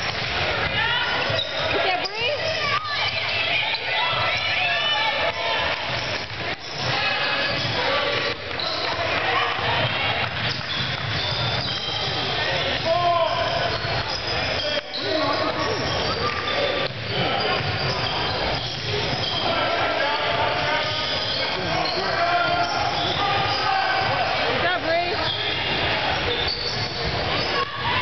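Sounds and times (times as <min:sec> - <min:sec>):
chatter of voices: 0:00.0 - 0:28.0.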